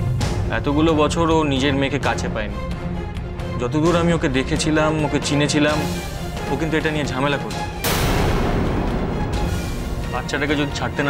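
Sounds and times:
background music: 0.0s - 11.0s
dramatic crash hit: 7.8s - 11.0s.

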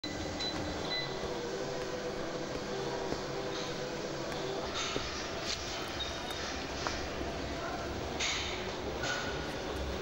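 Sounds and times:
treadmill motor and belt hum: 0.0s - 10.0s.

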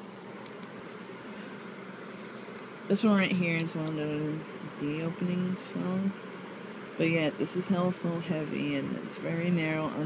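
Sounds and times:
faint hum: 0.0s - 10.0s
low hiss: 0.0s - 10.0s.

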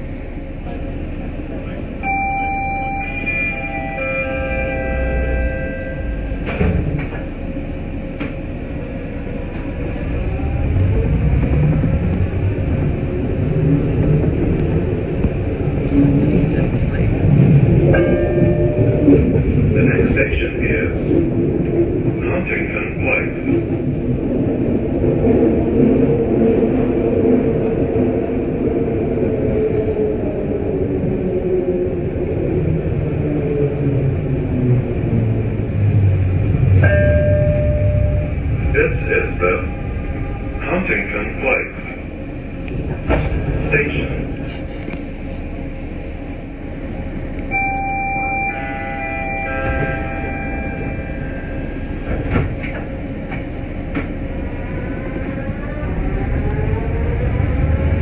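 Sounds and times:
train wheels rumbling on rail: 0.0s - 2.2s, 4.5s - 47.8s, 49.0s - 58.0s
recorded onboard announcement: 0.6s - 6.6s, 13.2s - 25.5s, 36.8s - 45.0s, 47.3s - 52.7s
short held tone: 47.5s - 51.6s.

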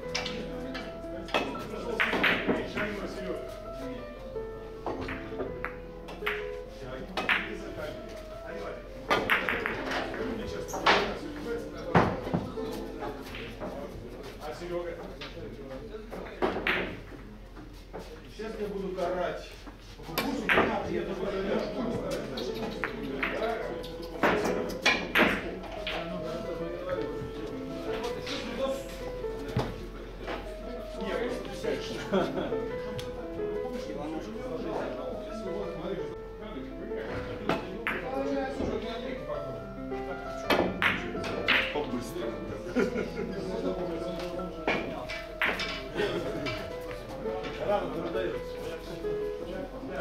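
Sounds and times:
background music: 0.0s - 15.0s, 16.6s - 17.0s, 20.2s - 50.0s
billiard balls clacking: 1.3s - 3.3s, 4.8s - 7.8s, 9.0s - 13.8s, 22.2s - 26.4s, 40.5s - 42.0s, 44.2s - 48.1s.

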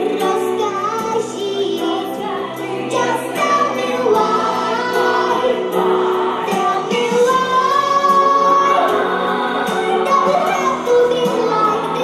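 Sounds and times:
girl singing pop ballad: 0.0s - 12.0s
musical accompaniment: 0.0s - 12.0s.

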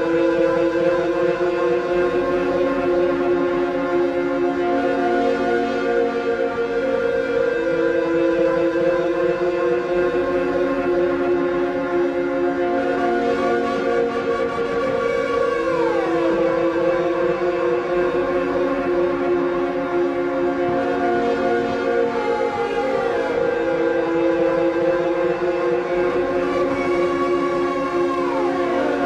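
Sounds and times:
electronic drone of steady tones: 0.0s - 29.0s.

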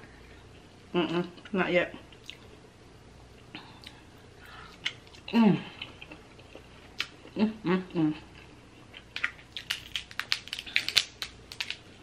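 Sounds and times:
person humming: 7.4s - 8.3s
crab shells cracking: 9.0s - 11.8s.

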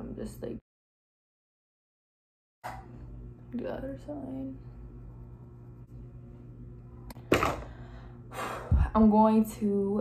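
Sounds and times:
faint steady hum: 2.7s - 10.0s.

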